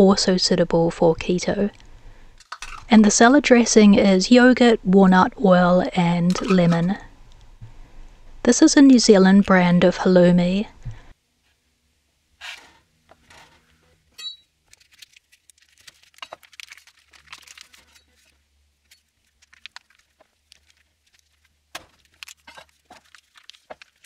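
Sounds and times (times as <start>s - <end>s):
plastic film crinkling: 14.6s - 24.0s.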